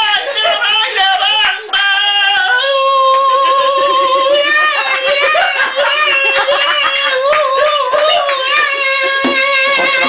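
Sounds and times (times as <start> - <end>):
man singing in a high voice: 0.0 - 10.0.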